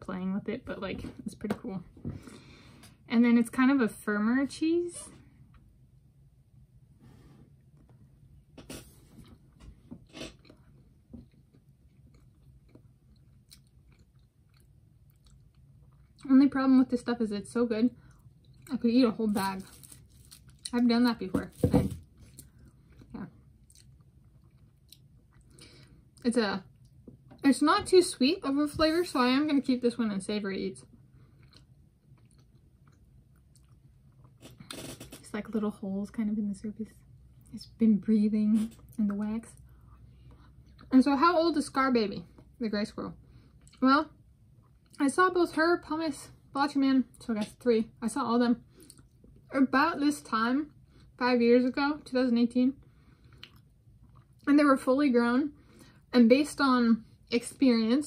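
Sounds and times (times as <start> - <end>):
person chewing: 10.1 - 16.2, 22.2 - 25.7, 31.3 - 35.2, 53.2 - 54.5.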